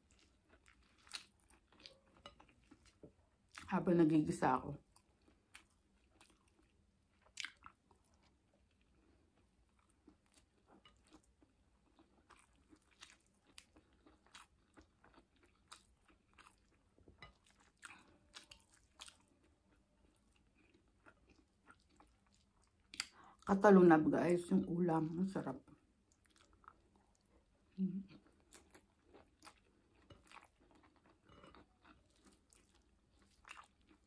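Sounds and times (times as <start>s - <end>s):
chewing with mouth clicks: 0.0s - 3.7s, 4.8s - 23.5s, 26.1s - 34.0s.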